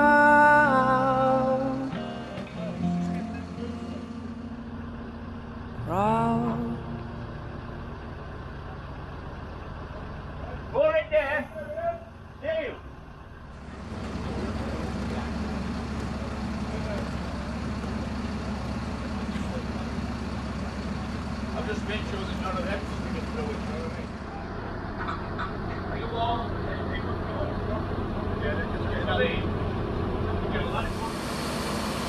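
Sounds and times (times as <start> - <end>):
diesel engine running under load: 0.0 - 32.0.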